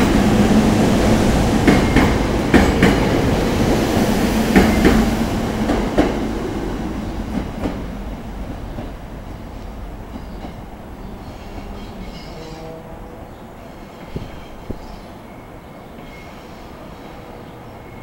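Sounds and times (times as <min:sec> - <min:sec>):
train wheels clacking over rail joints: 0:01.6 - 0:03.3, 0:04.5 - 0:06.2.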